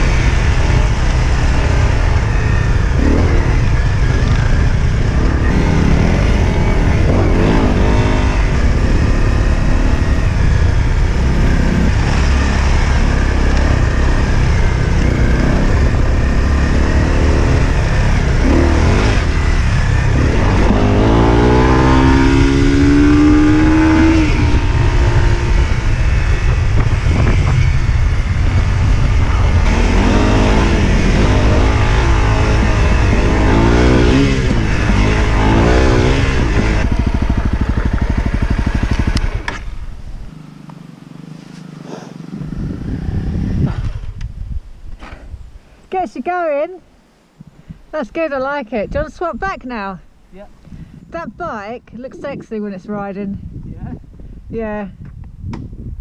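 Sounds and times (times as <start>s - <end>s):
motorcycle engine accelerating: 0.0s - 45.4s.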